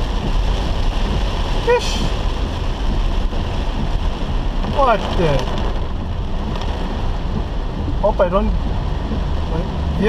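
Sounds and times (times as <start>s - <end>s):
heavy rain on a car: 0.0s - 10.0s
low rumble: 0.0s - 10.0s
tyres running through floodwater: 0.0s - 10.0s.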